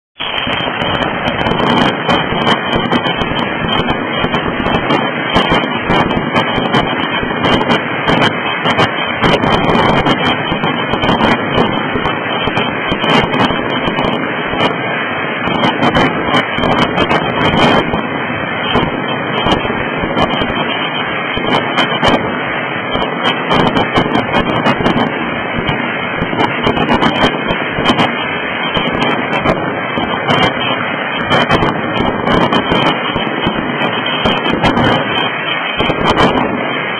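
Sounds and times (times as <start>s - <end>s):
fireworks crackling and banging: 0.2s - 36.9s.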